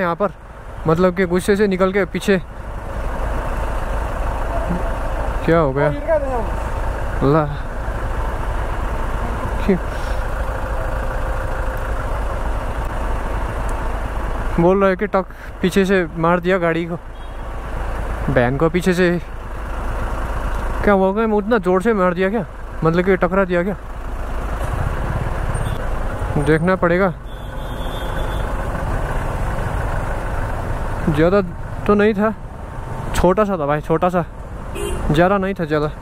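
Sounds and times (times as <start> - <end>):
street traffic: 0.0 - 36.0
vehicle engines idling: 0.0 - 36.0.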